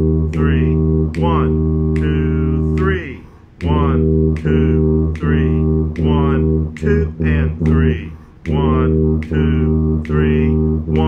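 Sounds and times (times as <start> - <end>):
tuba playing low notes: 0.0 - 11.0.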